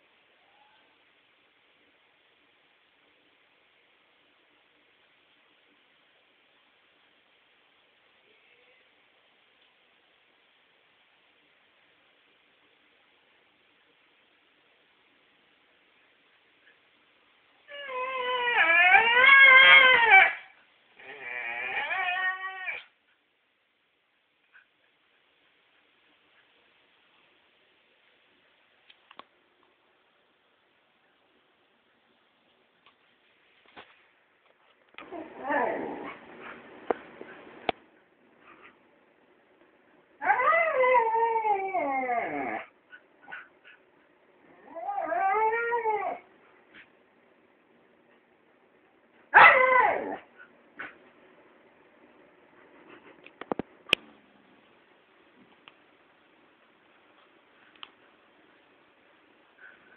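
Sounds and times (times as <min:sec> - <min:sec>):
dog whining: 0:17.7 - 0:22.9, 0:35.0 - 0:36.6, 0:40.2 - 0:43.8, 0:44.5 - 0:46.3, 0:49.3 - 0:50.9.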